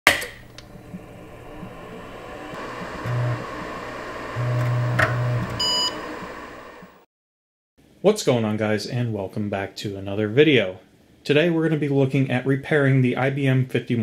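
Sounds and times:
computer humming: 0:00.4 - 0:07.0
low buzzing: 0:00.4 - 0:07.0
short high beep: 0:05.6 - 0:06.0.

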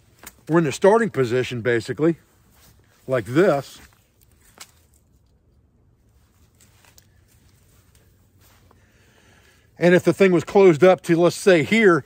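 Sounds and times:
rope rustling: 0:02.2 - 0:09.6
soft clicks of rope tackle: 0:06.3 - 0:08.8.

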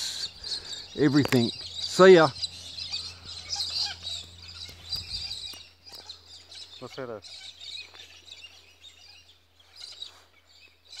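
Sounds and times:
wild birds chirping: 0:00.0 - 0:11.0.

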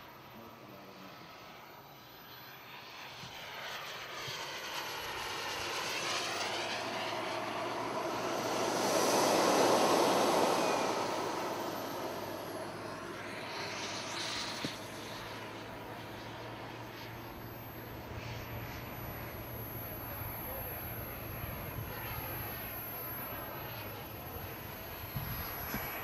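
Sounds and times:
jet turbine whine flyby: 0:00.0 - 0:26.0.

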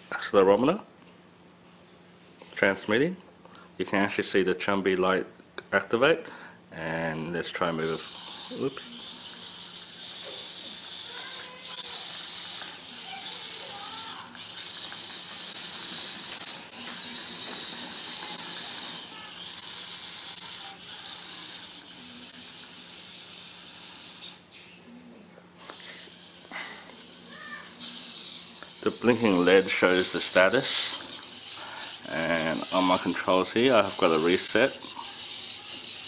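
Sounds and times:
faint steady hum: 0:00.0 - 0:36.0
rover motors and wheels whirring: 0:07.4 - 0:36.0.

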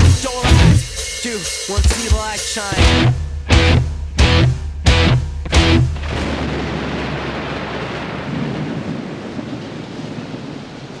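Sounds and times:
distorted electric guitar noise: 0:00.0 - 0:01.1, 0:01.7 - 0:06.3.

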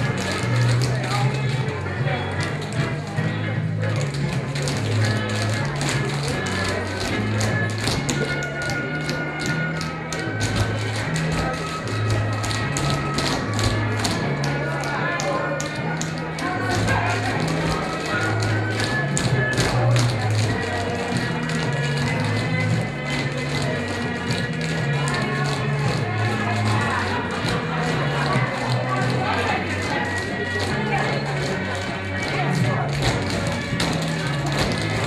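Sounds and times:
tap shoes clicking: 0:00.0 - 0:01.6, 0:03.9 - 0:35.0
music with bass line: 0:00.0 - 0:35.0.

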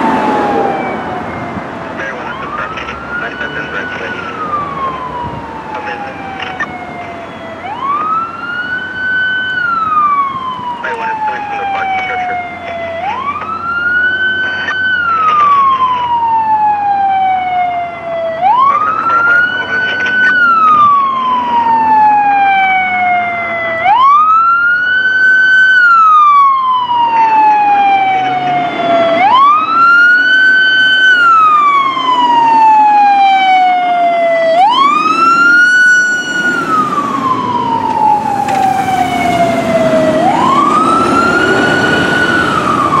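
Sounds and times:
engine and road noise: 0:00.0 - 0:43.0
fire engine siren wailing: 0:00.0 - 0:43.0.

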